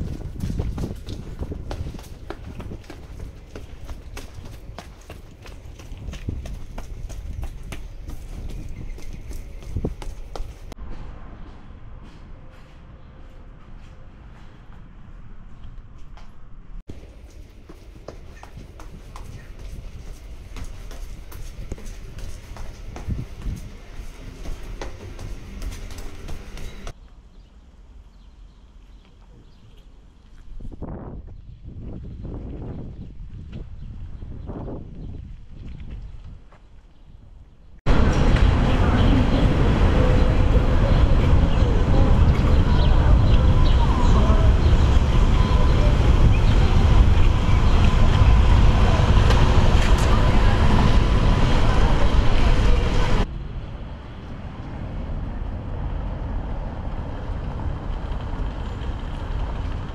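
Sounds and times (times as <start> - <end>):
wind rumble on microphone: 0.0 - 26.9, 29.3 - 59.9
distant voices of passers-by: 37.9 - 59.9.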